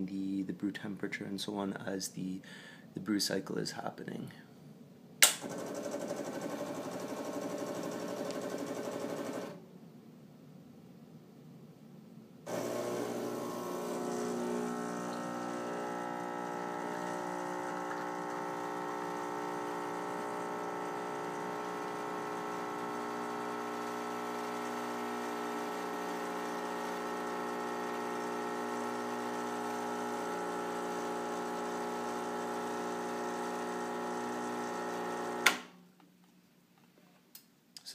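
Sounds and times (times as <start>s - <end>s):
sharp click: 5.2s - 5.4s
espresso machine pump buzzing: 5.4s - 9.6s, 12.5s - 35.6s.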